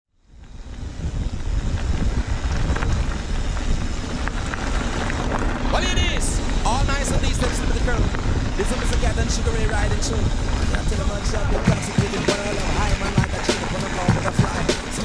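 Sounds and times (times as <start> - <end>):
wind buffeting microphone: 0.2 - 15.0
tyres rolling over gravel: 0.4 - 15.0
person speaking: 5.7 - 15.0.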